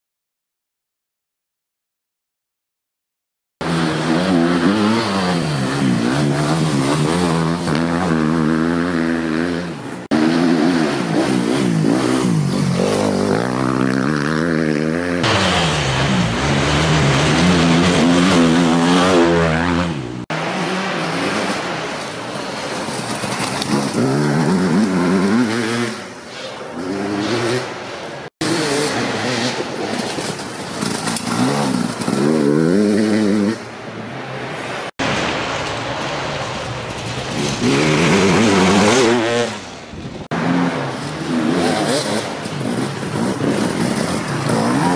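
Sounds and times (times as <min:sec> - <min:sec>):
motorcycle engines revving: 0:03.6 - 0:44.9.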